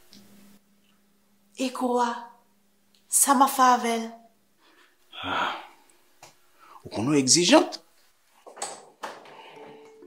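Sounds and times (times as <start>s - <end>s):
soft sustained music tones: 9.4s - 10.0s.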